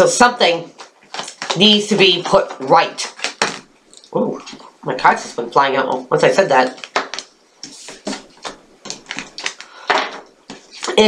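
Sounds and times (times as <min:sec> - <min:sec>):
cards being shuffled: 0:00.8 - 0:05.4, 0:06.6 - 0:09.8, 0:10.5 - 0:11.0.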